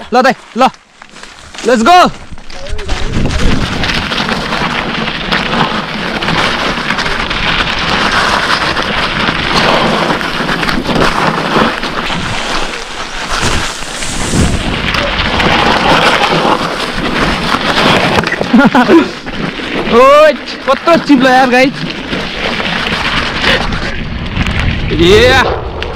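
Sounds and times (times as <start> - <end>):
tyres crunching over gravel: 0.0 - 24.9
bike clattering: 0.4 - 24.8.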